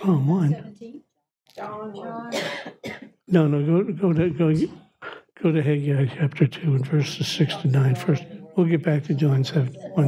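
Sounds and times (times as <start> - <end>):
surrounding speech: 0.0 - 10.0
person murmuring: 3.3 - 10.0.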